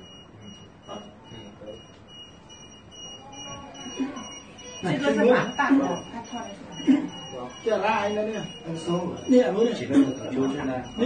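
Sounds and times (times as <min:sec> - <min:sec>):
electronic alarm beeping: 0:00.0 - 0:11.0
muffled voices: 0:00.3 - 0:11.0.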